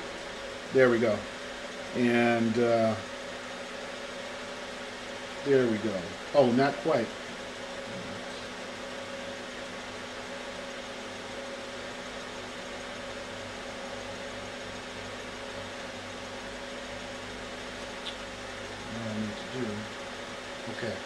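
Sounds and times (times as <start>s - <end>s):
cooling fans whirring: 0.0s - 21.0s.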